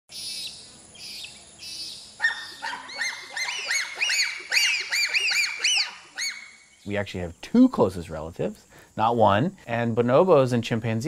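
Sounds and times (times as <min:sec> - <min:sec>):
bonobos calling: 0:00.1 - 0:07.0.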